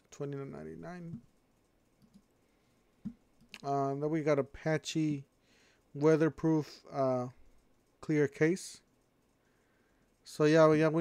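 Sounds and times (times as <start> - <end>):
faint computer mouse clicks: 2.0 - 2.3.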